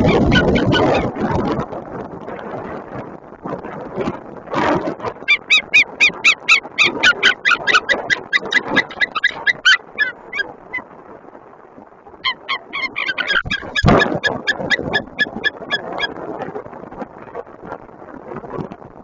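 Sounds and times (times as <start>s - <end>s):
eagle calling: 0.0s - 1.1s, 5.2s - 10.8s, 12.2s - 16.1s
wind gust on microphone: 0.0s - 19.0s.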